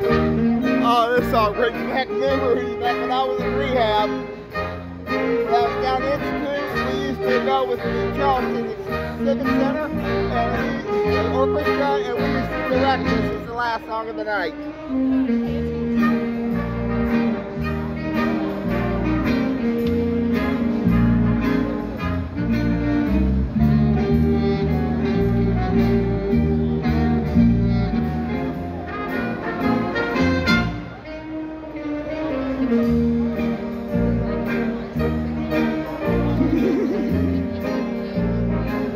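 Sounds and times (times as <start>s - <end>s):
big band jazz: 0.0s - 38.9s.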